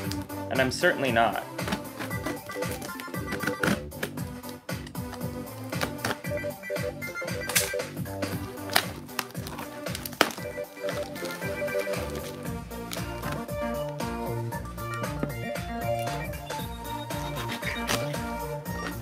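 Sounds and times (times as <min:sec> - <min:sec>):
tape snaps: 0:00.0 - 0:00.3, 0:01.6 - 0:06.3, 0:07.4 - 0:19.0
packing tape tearing: 0:00.0 - 0:00.4, 0:01.4 - 0:06.4, 0:07.4 - 0:19.0
background music: 0:00.0 - 0:19.0.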